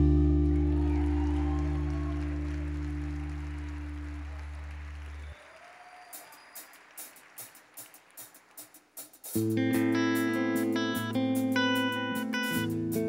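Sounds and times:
audience applause: 0.2 - 9.0.

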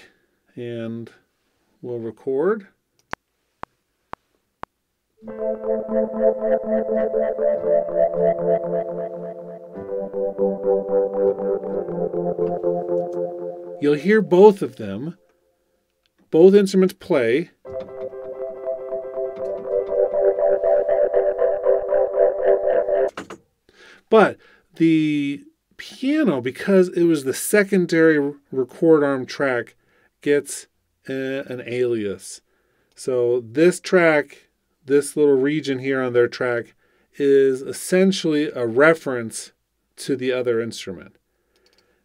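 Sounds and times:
piano: 5.2 - 14.8, 17.7 - 23.1
pulsing gated synth: 5.2 - 14.8, 17.7 - 23.1
metronome clicks: 9.7 - 14.6, 17.7 - 21.5.

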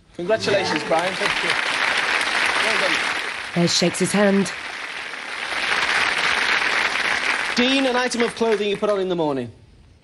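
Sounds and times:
studio audience applauding: 0.2 - 9.2.

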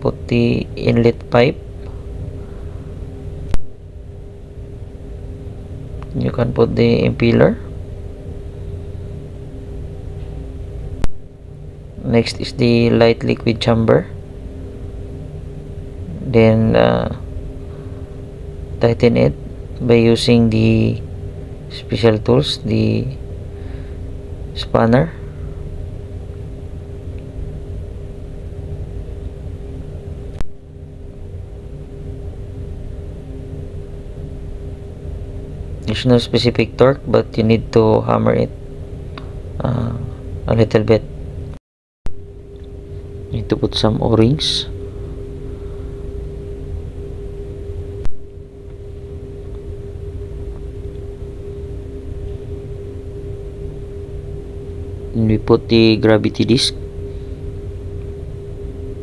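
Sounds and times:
low machinery hum and rumble: 0.0 - 59.0.

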